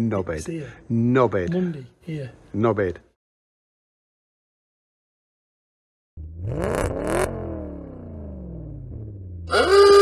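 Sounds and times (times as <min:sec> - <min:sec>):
car engine winding down: 0:06.2 - 0:10.0.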